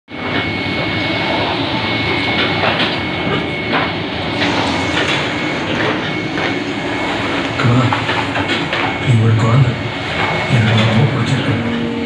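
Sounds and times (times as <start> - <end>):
faint high whine: 0.1 - 12.0
printing press rumble: 0.1 - 12.0.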